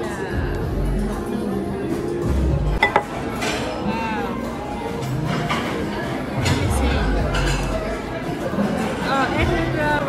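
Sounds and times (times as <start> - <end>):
background music: 0.0 - 10.0
restaurant chatter: 0.0 - 10.0
tableware clinking: 2.8 - 3.8.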